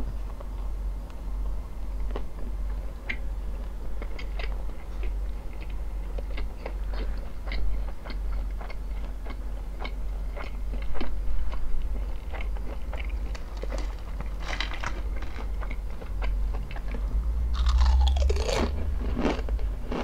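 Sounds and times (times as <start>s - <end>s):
chewing crunchy potato chips: 2.0s - 20.0s.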